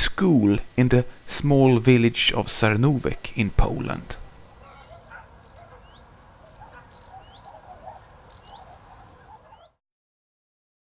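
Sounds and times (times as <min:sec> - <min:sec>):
birds warbling: 0:04.1 - 0:09.8
rising bird chirp: 0:04.4 - 0:09.8.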